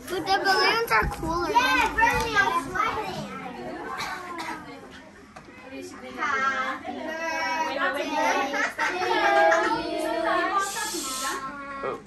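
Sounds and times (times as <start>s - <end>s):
voices in a small room: 0.0s - 12.0s
short breathy hiss: 10.6s - 11.5s.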